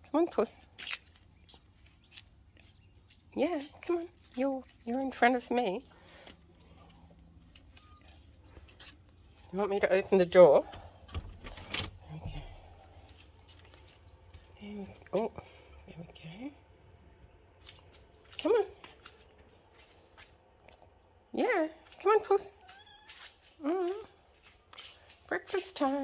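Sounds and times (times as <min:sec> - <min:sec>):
faint low hum: 0:00.0 - 0:23.0.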